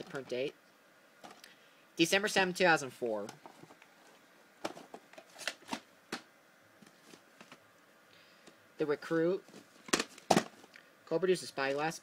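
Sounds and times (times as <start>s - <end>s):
plastic cassette cases clicking: 4.6s - 6.2s.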